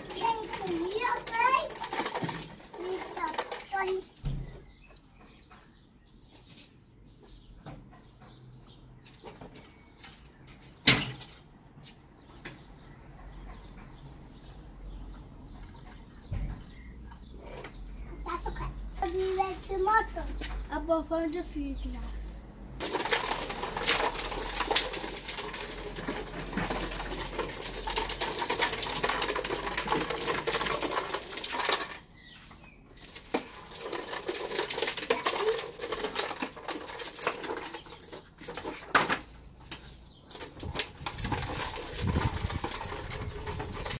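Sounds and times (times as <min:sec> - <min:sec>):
tricycle wheels rattling on paving: 0:00.0 - 0:05.9, 0:13.3 - 0:44.0.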